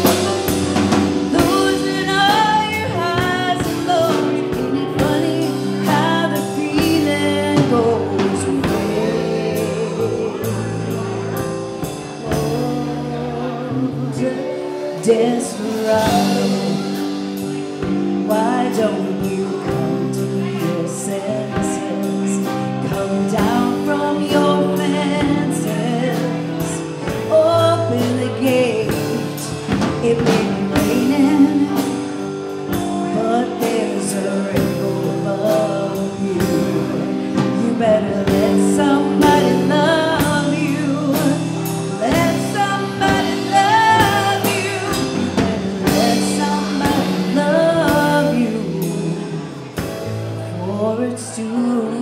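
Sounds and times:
drum kit: 0:00.0 - 0:52.0
electric guitars: 0:00.0 - 0:52.0
keyboard chords: 0:00.0 - 0:52.0
person singing lead vocals: 0:00.0 - 0:52.0.

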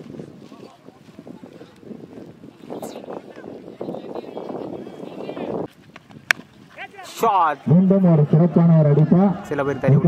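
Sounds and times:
murmur of voices: 0:00.4 - 0:05.7, 0:06.7 - 0:10.0.

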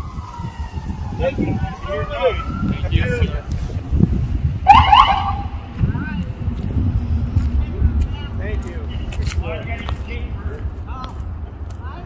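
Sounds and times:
police siren whoop: 0:00.0 - 0:03.3, 0:04.7 - 0:05.5
rumble of passing vehicles: 0:00.0 - 0:12.0
voices: 0:01.1 - 0:04.0, 0:04.6 - 0:12.0.

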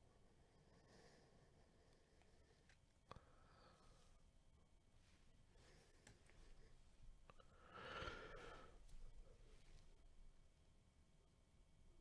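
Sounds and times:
faint breathy hiss: 0:05.0 - 0:10.0.

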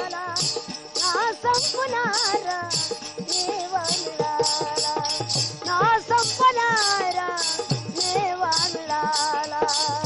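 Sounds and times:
woman singing folk song: 0:00.0 - 0:10.0.

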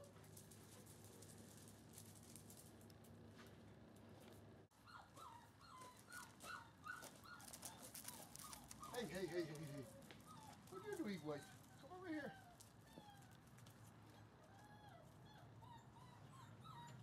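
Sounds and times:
puppies whining: 0:04.7 - 0:17.0.

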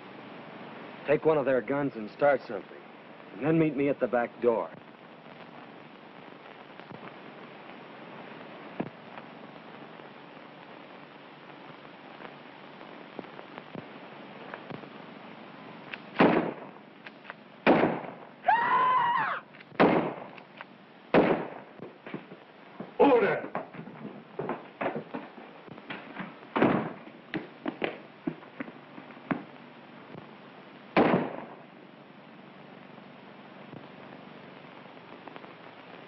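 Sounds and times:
rifle and pistol shots: 0:16.1 - 0:16.7, 0:17.6 - 0:18.2, 0:19.8 - 0:20.4, 0:21.1 - 0:21.6, 0:31.0 - 0:31.6.

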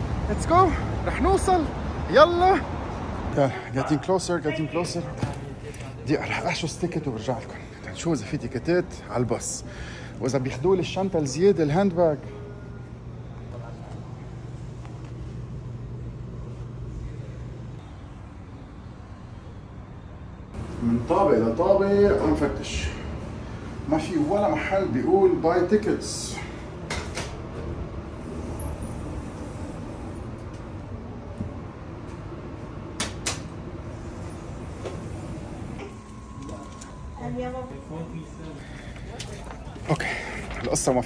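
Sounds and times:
street traffic: 0:00.0 - 0:41.0
vehicle engine humming: 0:04.3 - 0:41.0.

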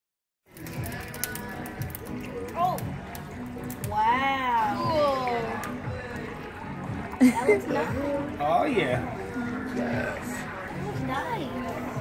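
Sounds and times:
background music: 0:00.5 - 0:12.0
people talking: 0:07.2 - 0:12.0.

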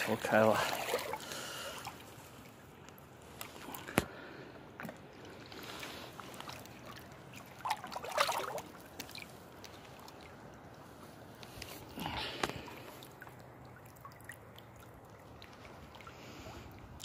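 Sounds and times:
river water sloshing and trickling: 0:00.0 - 0:17.0
fish splashing: 0:04.8 - 0:10.6, 0:11.8 - 0:17.0.

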